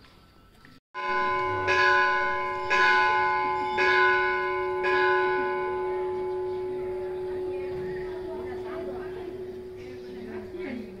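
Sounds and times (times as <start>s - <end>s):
large metal bell ringing: 1.0s - 11.0s.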